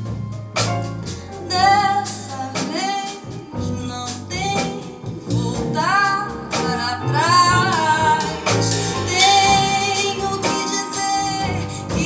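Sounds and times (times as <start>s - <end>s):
band playing: 0.0s - 12.0s
woman singing: 1.3s - 12.0s.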